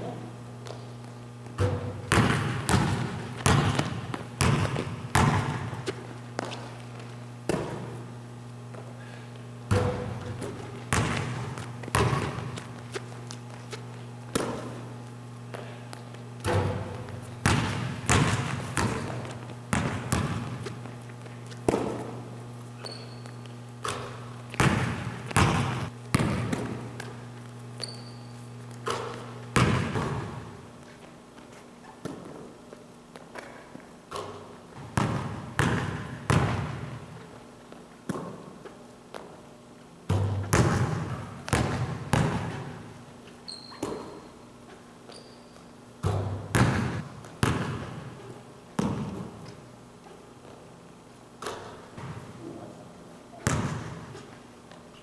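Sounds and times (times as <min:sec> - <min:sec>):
low steady hum: 0:00.0 - 0:55.0
basketball bouncing on wooden floor: 0:00.6 - 0:08.0, 0:09.7 - 0:22.2, 0:22.8 - 0:27.2, 0:27.8 - 0:30.5, 0:34.1 - 0:37.2, 0:40.1 - 0:42.9, 0:43.5 - 0:44.3, 0:46.0 - 0:48.2, 0:48.8 - 0:49.6, 0:51.4 - 0:52.3, 0:53.4 - 0:54.3.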